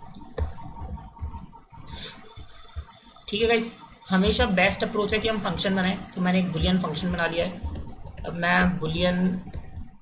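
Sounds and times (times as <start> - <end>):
quiet keyboard keystrokes: 7.6 - 10.0.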